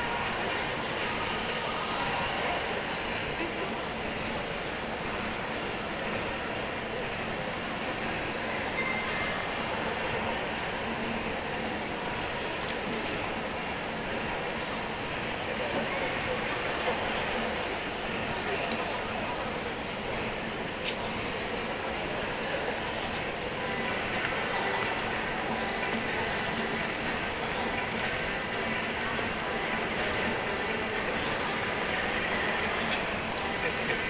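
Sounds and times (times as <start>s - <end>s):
indistinct voices: 0.0s - 34.0s.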